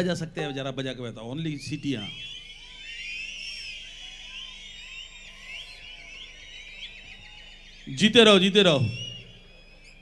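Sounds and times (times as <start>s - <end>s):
audience whistling: 0.0s - 10.0s.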